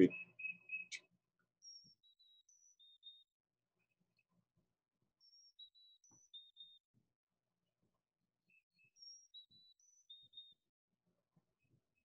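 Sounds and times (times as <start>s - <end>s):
bird song from a recording: 0.0s - 12.0s.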